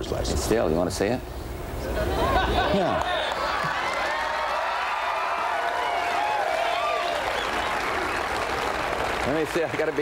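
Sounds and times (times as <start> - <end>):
audience applauding: 2.8 - 10.0.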